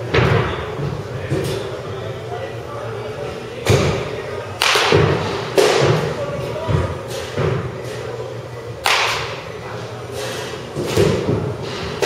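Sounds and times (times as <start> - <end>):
balls slamming into batting cage: 0.1 - 1.6, 3.6 - 7.7, 8.8 - 9.4, 10.3 - 12.0
baseballs being hit: 3.6 - 9.6, 10.2 - 12.0.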